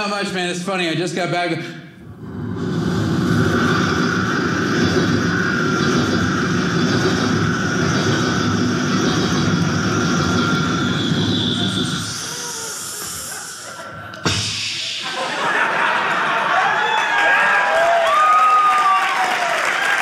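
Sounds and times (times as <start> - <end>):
person imitating a train: 10.6 - 15.2.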